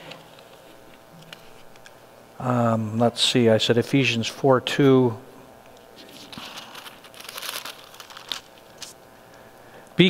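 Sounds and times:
sharp page flicks: 6.0 - 9.0
thin paper pages rustling: 6.0 - 9.0.

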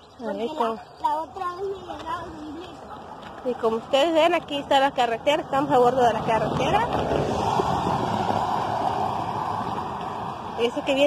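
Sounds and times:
vehicle driving on highway: 1.0 - 11.0.

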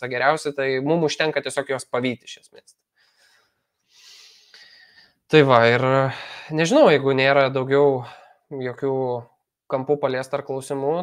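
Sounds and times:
person breathing: 2.9 - 5.3, 6.1 - 6.6, 8.0 - 8.5.

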